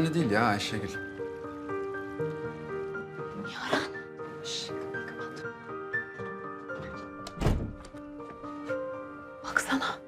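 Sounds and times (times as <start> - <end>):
background music of held notes: 0.0 - 10.0
wooden door thud: 6.7 - 8.0.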